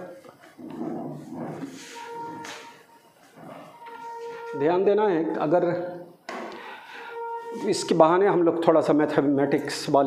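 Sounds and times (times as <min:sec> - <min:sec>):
duster wiping whiteboard: 0:00.0 - 0:04.6.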